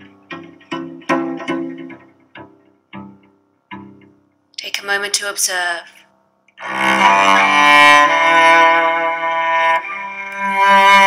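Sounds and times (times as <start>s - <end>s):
cello playing slow notes: 6.6s - 11.0s.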